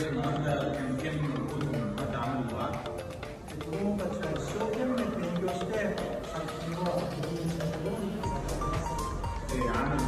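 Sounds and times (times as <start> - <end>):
man speaking: 0.0 - 10.0
quiet music: 0.0 - 10.0.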